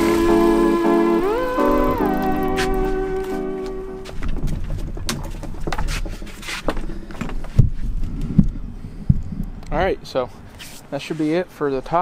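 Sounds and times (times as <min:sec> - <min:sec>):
background music with held tone: 0:00.0 - 0:06.5
heavy thumps: 0:02.3 - 0:09.6.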